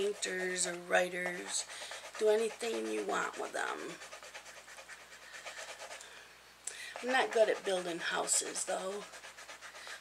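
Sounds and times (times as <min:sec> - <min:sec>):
coloured pencil rubbing on paper: 0:00.0 - 0:06.0, 0:06.9 - 0:10.0.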